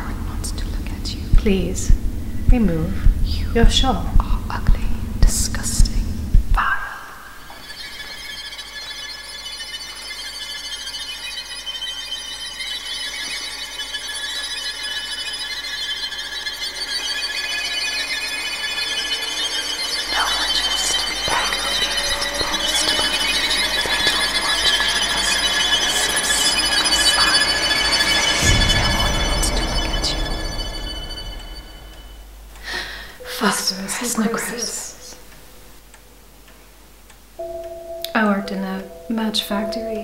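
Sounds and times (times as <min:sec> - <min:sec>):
dissonant screeching horror tones: 0:00.0 - 0:35.9.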